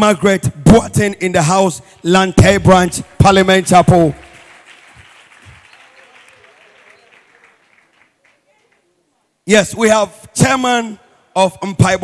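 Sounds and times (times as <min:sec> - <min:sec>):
congregation applauding: 0:01.8 - 0:08.9.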